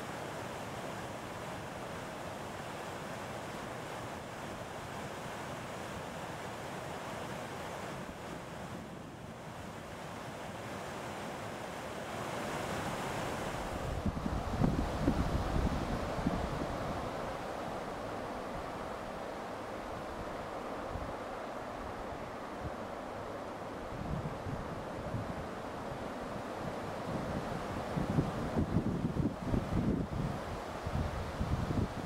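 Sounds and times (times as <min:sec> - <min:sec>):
wind buffeting microphone: 0:13.5 - 0:18.7, 0:26.7 - 0:32.0.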